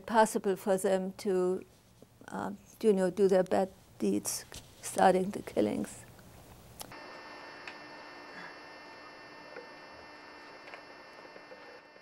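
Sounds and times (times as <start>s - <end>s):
steady electrical hum: 0.0s - 12.0s
faint high whine: 6.9s - 12.0s.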